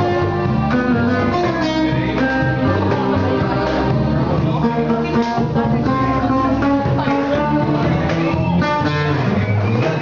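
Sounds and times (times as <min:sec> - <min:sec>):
electric bass line: 0:00.0 - 0:10.0
plucked guitar melody: 0:00.0 - 0:10.0.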